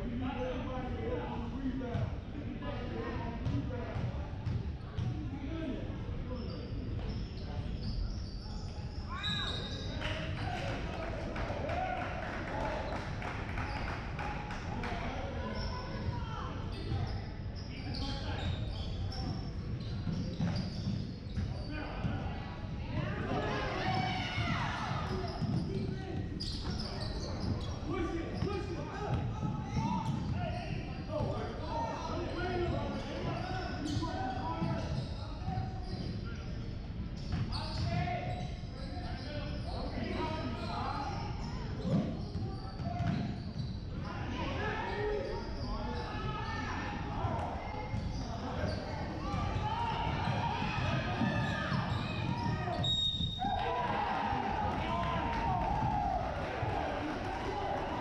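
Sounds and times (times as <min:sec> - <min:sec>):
referee's whistle: 0:07.8 - 0:09.9, 0:51.7 - 0:53.6.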